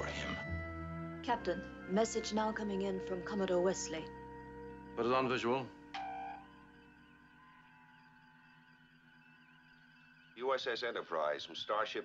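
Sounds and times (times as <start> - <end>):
electronic humming tones: 5.8 - 7.7.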